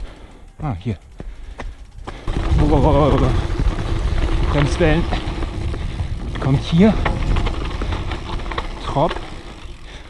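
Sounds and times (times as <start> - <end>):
tyres rumbling on dirt: 1.9 - 10.0
wind on microphone: 2.3 - 8.6.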